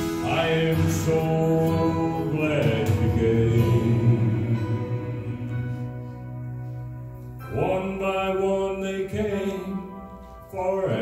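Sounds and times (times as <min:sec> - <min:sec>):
man singing into a microphone: 0:00.0 - 0:05.8, 0:07.4 - 0:11.0
backing music: 0:00.0 - 0:11.0.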